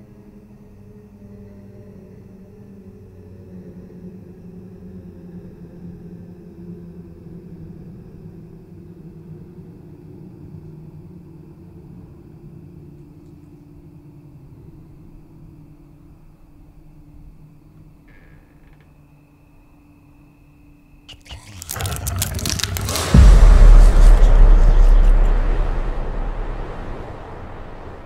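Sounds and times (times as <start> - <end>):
ominous low rumbling drone: 21.1 - 28.0.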